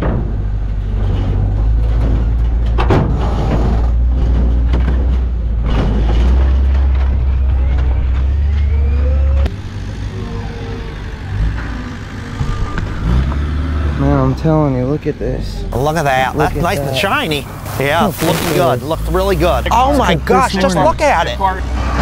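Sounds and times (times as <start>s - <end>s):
diesel engine rumbling: 0.0s - 22.0s
distant engine and yard noise: 0.0s - 22.0s.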